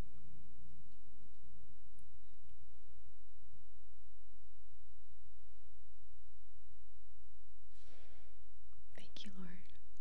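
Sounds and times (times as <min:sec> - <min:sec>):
soft breath: 0:07.7 - 0:09.8
woman whispering: 0:09.0 - 0:09.8.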